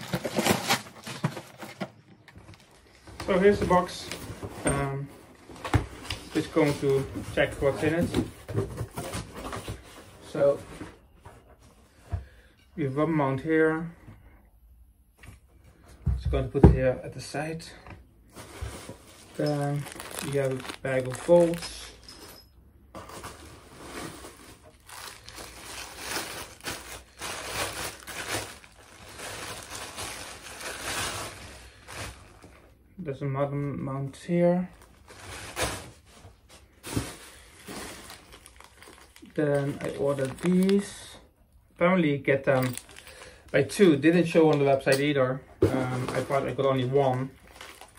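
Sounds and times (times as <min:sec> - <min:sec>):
packing paper rustling: 0:00.0 - 0:04.5, 0:18.3 - 0:22.4, 0:23.0 - 0:32.7, 0:34.8 - 0:41.1, 0:42.4 - 0:44.6, 0:45.6 - 0:47.9.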